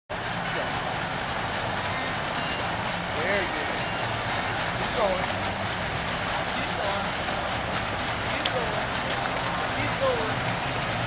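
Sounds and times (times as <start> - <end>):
steady outdoor noise: 0.1 - 11.0
water splashing: 0.1 - 11.0.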